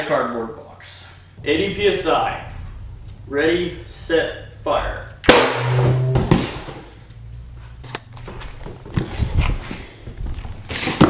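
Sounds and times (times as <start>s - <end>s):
footsteps on workshop floor: 7.6s - 11.0s.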